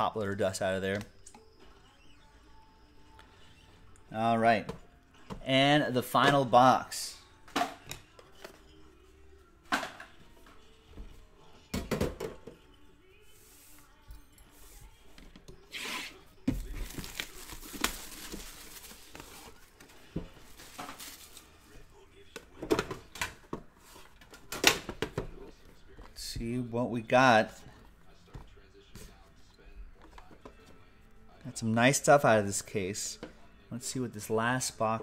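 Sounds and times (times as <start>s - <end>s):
cellophane tearing and crinkling: 16.8s - 19.6s.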